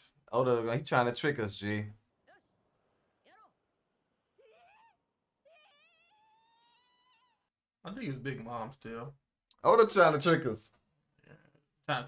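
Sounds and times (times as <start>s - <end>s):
high-pitched cartoon voice crying out: 4.4s - 7.4s.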